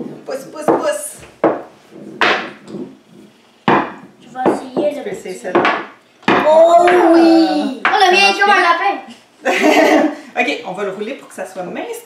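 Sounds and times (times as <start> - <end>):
rolling pins knocking on wood: 0.0 - 3.0, 5.5 - 6.6.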